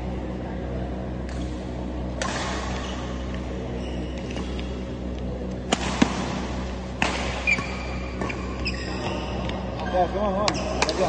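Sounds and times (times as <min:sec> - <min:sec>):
steady hum: 0:00.0 - 0:11.0
rackets hitting shuttlecock: 0:01.2 - 0:03.5, 0:05.6 - 0:08.8, 0:10.4 - 0:11.0
shoes squeaking on court: 0:02.7 - 0:04.8, 0:07.4 - 0:11.0.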